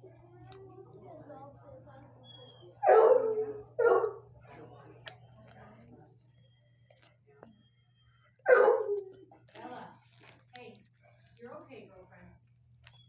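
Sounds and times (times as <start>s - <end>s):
faint indistinct voices: 0.0s - 12.4s
dog barking sharply: 8.5s - 9.0s.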